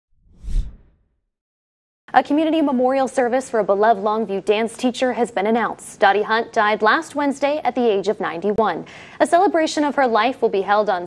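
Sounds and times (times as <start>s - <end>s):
deep whoosh: 0.2s - 1.0s.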